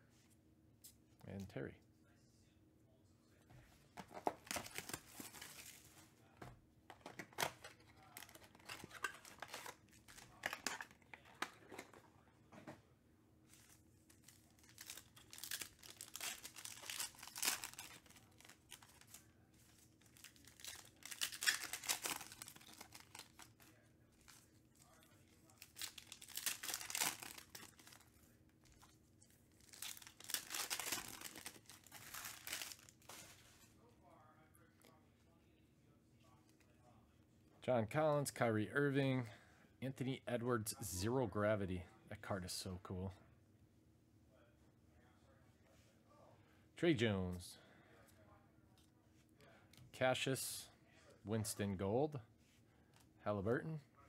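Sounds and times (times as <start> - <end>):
plastic wrappers tearing and crinkling: 4.2 - 5.9, 6.9 - 12.0, 13.6 - 28.9, 29.5 - 33.4.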